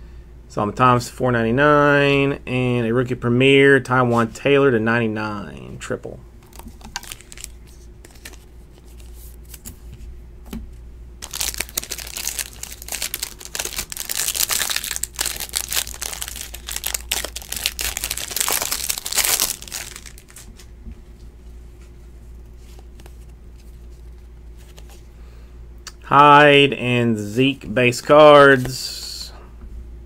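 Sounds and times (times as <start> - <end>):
plastic wrapping crinkling: 6.4 - 9.6, 11.2 - 20.7.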